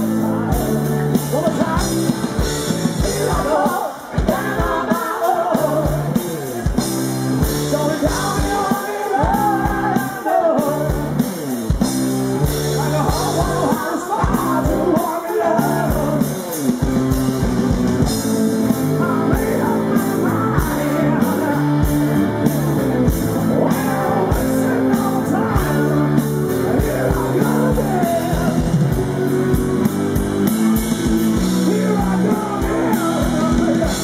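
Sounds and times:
lead vocal singing: 0.0 - 11.8, 12.4 - 17.0, 18.0 - 34.0
electric guitar: 0.0 - 34.0
drum beat: 1.3 - 34.0.

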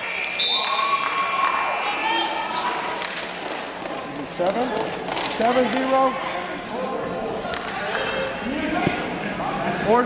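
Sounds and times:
voices shouting in a hall: 0.0 - 3.1.

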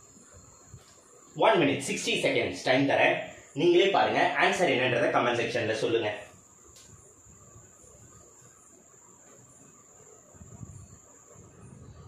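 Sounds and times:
cricket trilling: 0.0 - 12.0
faint click: 6.7 - 7.0.

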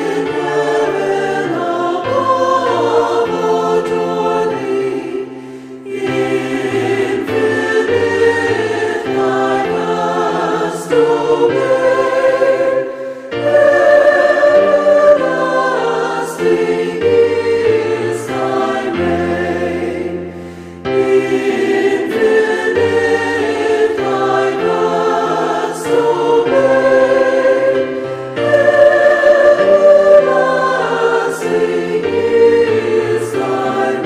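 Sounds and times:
choir singing a hymn: 0.0 - 34.0.

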